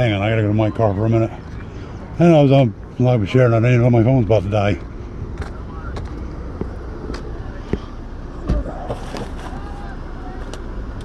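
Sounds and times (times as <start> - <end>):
low steady rumble: 0.0 - 11.0
footsteps on asphalt: 4.8 - 8.0.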